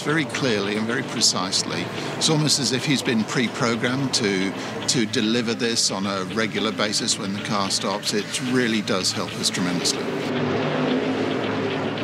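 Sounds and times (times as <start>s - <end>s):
race car engine running: 0.0s - 12.0s.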